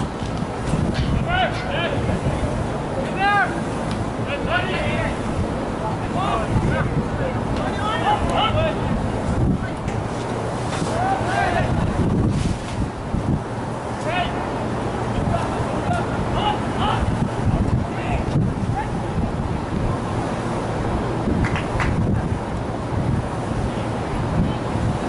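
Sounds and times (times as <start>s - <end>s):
wind buffeting microphone: 0.0s - 25.0s
distant voices shouting: 1.0s - 12.0s, 13.8s - 19.2s.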